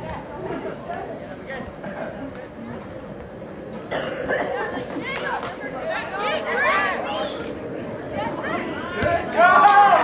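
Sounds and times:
voices shouting outdoors: 3.9 - 10.0.

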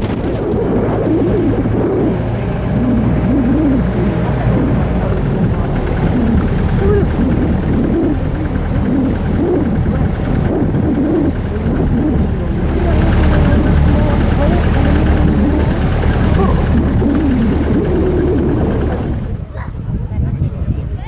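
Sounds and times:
road noise: 0.0 - 21.0
truck engine drone: 0.0 - 21.0.

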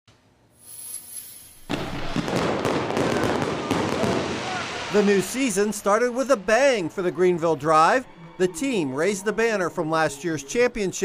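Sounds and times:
fireworks popping and banging: 1.6 - 5.6.

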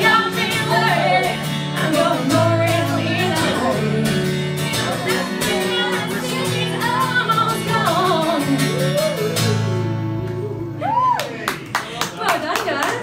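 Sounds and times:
person singing: 0.0 - 10.8
guitar: 0.0 - 13.0
audience clapping: 11.0 - 13.0.

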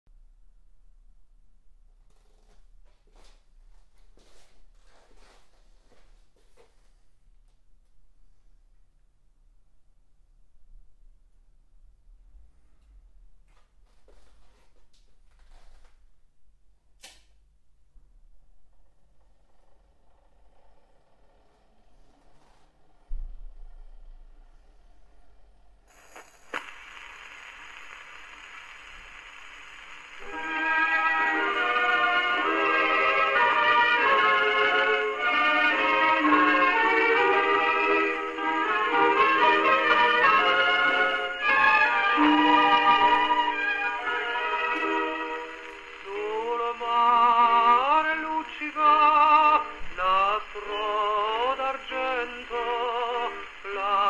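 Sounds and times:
low mains hum: 0.1 - 54.0
record surface hiss: 0.1 - 54.0
music from gramophone horn: 25.9 - 50.0.

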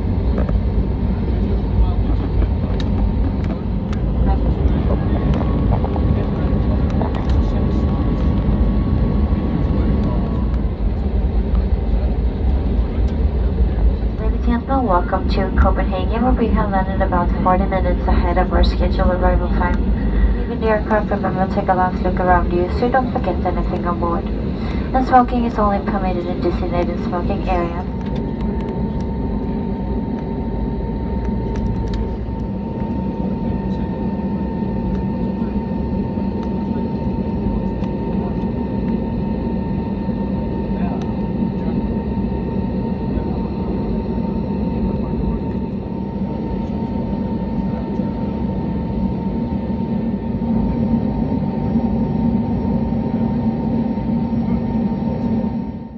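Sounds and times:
aircraft engine rumble: 0.0 - 55.9
engine whine: 0.0 - 55.9.

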